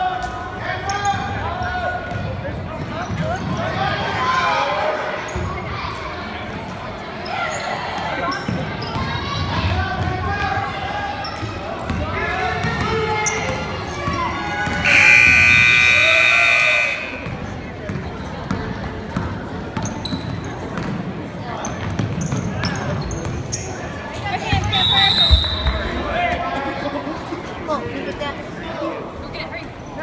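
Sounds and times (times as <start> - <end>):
voices of players and spectators: 0.0 - 30.0
scoreboard buzzer blast: 14.8 - 17.4.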